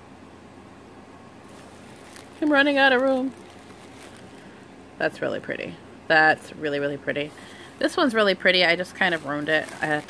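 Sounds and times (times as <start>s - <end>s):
faint low hum: 0.0s - 10.0s
low background hiss: 0.0s - 10.0s.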